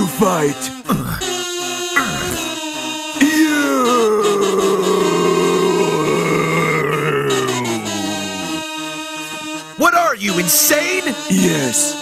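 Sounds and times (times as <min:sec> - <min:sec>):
man groaning: 0:00.9 - 0:01.3, 0:02.0 - 0:02.5, 0:03.2 - 0:08.6.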